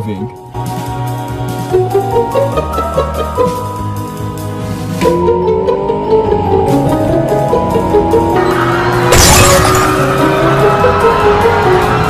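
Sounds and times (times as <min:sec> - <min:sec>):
background music: 0:00.0 - 0:12.0
car crash with shattering glass: 0:09.1 - 0:10.1.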